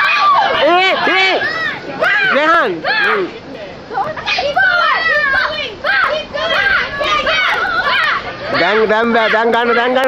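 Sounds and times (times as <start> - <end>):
children shouting: 0.0 - 10.0.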